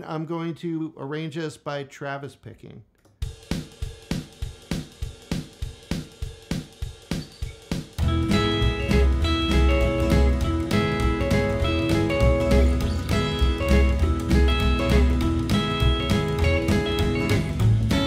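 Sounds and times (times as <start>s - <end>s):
drums playing: 3.2s - 18.0s
bass: 8.0s - 18.0s
electric guitar picking chords: 8.0s - 18.0s.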